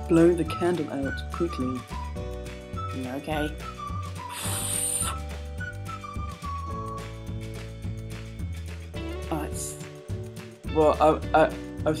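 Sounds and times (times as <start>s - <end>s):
background music: 0.0s - 12.0s
blowing out candle: 4.3s - 5.3s.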